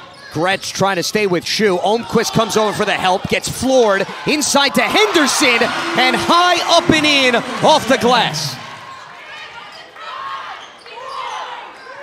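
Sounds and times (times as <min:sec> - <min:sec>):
crowd murmur: 0:04.1 - 0:09.2.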